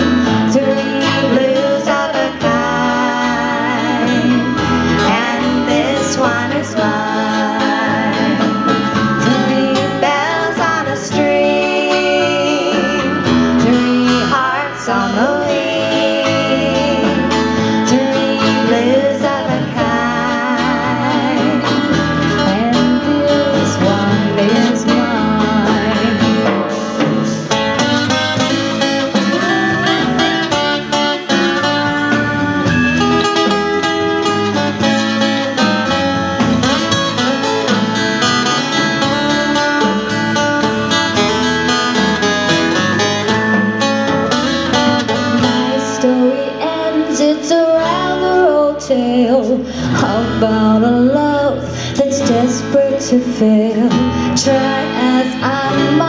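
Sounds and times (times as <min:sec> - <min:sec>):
acoustic guitar: 0:00.0 - 0:56.0
drums: 0:00.0 - 0:56.0
electric bass: 0:00.0 - 0:56.0.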